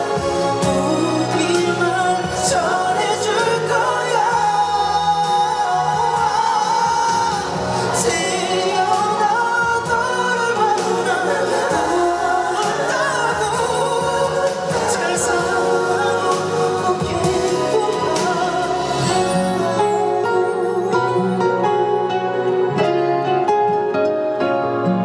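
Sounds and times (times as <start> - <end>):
man singing slow ballad: 0.0 - 23.4
band accompaniment: 0.0 - 25.0.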